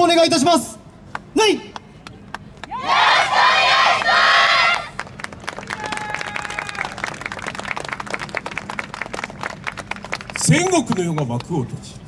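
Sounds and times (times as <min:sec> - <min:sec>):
sharp claps and clacks: 0:05.0 - 0:11.6.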